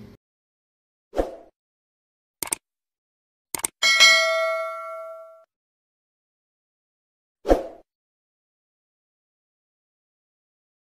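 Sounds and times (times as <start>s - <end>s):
bell-like chime ringing: 3.8s - 5.5s.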